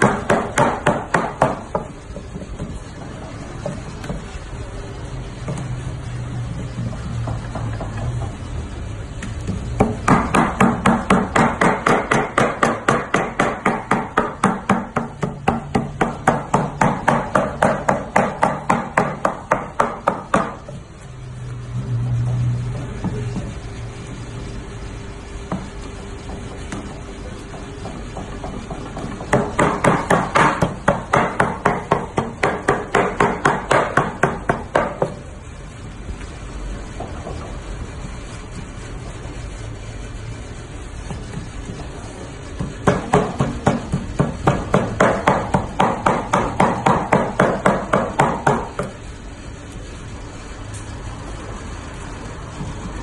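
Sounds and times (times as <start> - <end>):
cleaver chopping meat on wood: 28.4 - 35.1, 42.6 - 48.9.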